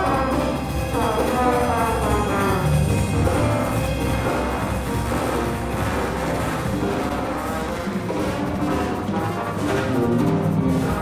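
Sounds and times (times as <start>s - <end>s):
big band jazz orchestra: 0.0s - 11.0s
horns: 0.0s - 11.0s.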